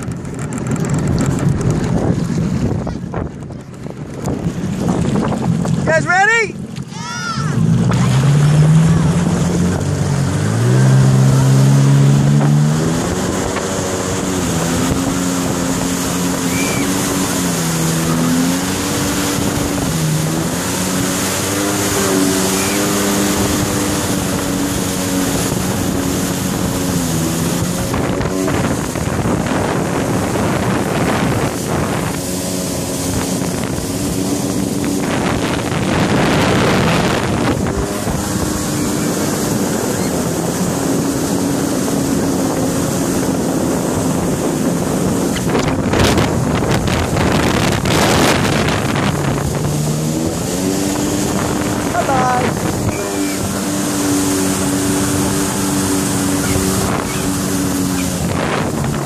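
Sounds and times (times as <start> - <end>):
motorboat engine: 0.0 - 59.0
rush of boat wake: 0.0 - 59.0.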